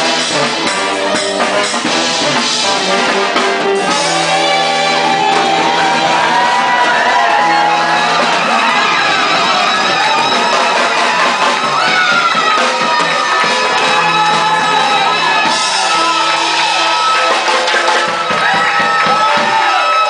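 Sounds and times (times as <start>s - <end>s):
drum kit: 0.0s - 20.0s
electric guitar: 0.0s - 20.0s
saxophones: 0.0s - 20.0s
audience shouting and whooping: 3.6s - 20.0s.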